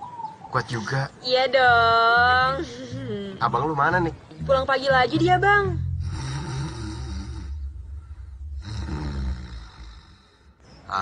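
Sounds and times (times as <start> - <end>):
man snoring loudly: 6.0 - 7.7, 8.5 - 10.4.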